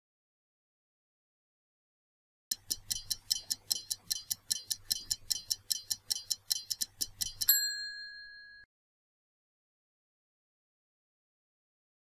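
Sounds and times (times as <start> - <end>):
stopwatch ticking: 2.5 - 8.6.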